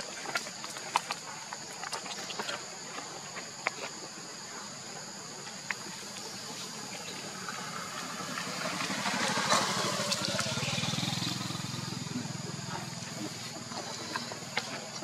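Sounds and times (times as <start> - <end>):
high buzz of insects: 0.0 - 15.0
vehicle engine approaching: 6.8 - 15.0.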